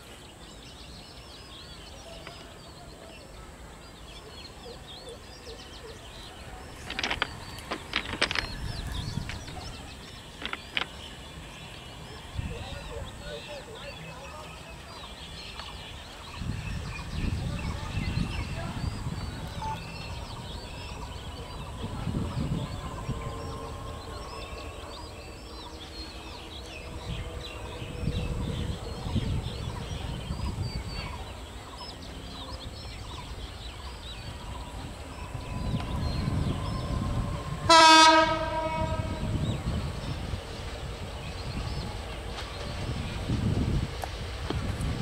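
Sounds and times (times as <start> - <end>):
diesel locomotive engine rumble: 0.0 - 45.0
train horn blast: 36.2 - 39.4.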